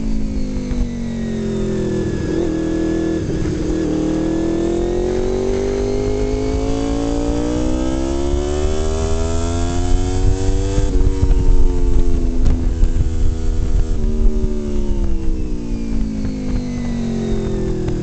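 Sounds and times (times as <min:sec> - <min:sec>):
motorcycle engine accelerating: 0:00.0 - 0:18.0.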